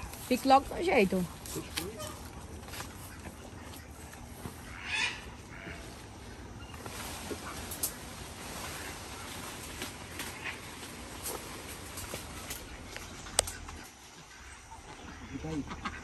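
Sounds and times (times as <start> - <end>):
waterfowl call: 4.6 - 6.1.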